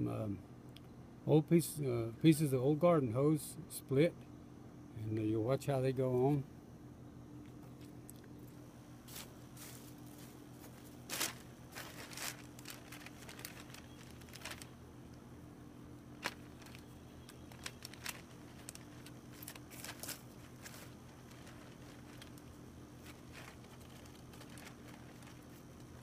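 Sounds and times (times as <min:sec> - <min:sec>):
faint steady hum: 0:00.0 - 0:26.0
plastic sheeting crinkling: 0:09.1 - 0:14.8, 0:16.1 - 0:26.0.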